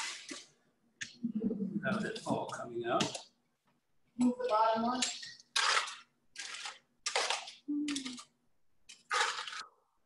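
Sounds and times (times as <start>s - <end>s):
foil pouch crinkling: 8.9s - 9.7s.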